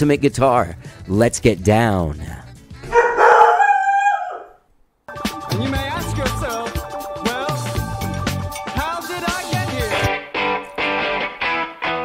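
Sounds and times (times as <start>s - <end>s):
drawn-out howl: 3.0s - 4.6s.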